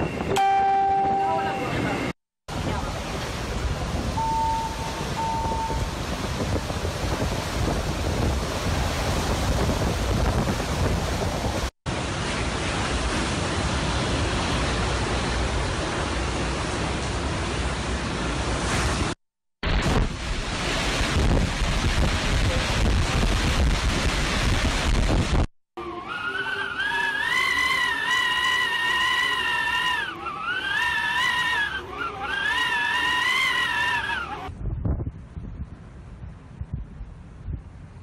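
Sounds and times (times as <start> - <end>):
brief beeps: 0.0 - 2.2, 4.2 - 5.8
short pitched tone: 0.0 - 2.2, 4.2 - 5.9
wind and driving rain: 2.5 - 25.5.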